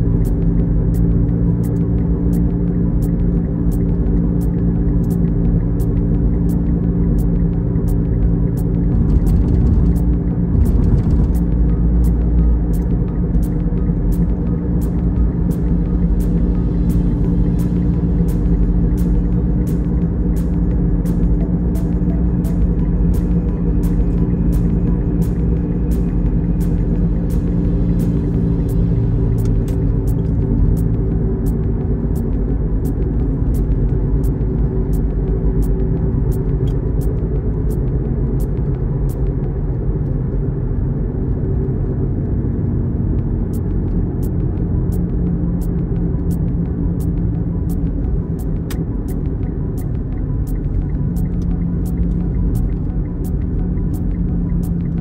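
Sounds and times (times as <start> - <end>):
car engine and tyre rumble: 0.0 - 55.0
light regular ticking: 43.5 - 55.0.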